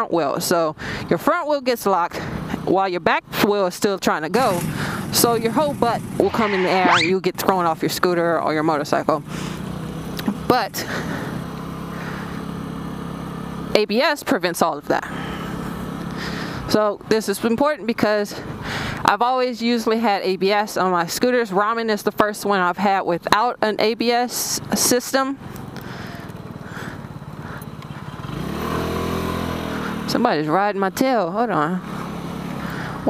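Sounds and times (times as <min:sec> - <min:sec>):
road and air noise: 0:00.7 - 0:01.3, 0:04.4 - 0:07.3, 0:09.2 - 0:13.8, 0:14.6 - 0:21.3, 0:24.0 - 0:33.0
scooter engine running: 0:02.0 - 0:03.5, 0:04.2 - 0:19.1, 0:23.8 - 0:33.0.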